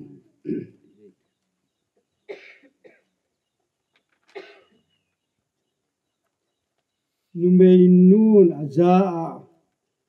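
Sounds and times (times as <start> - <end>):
man coughing into microphone: 0.5 - 0.8, 2.3 - 3.1, 4.3 - 4.8.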